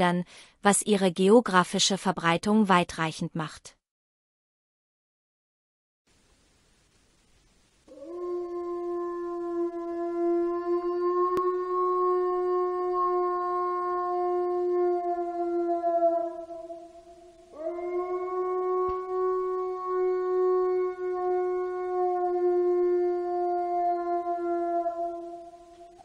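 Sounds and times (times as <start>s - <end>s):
wolf howling: 7.9s - 26.0s.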